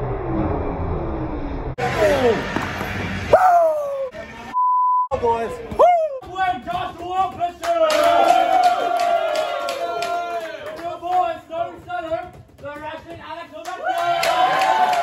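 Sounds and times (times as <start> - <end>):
young men shouting and cheering: 3.3 - 4.2, 5.2 - 11.6, 13.6 - 15.0
hand claps and slaps: 6.2 - 11.4.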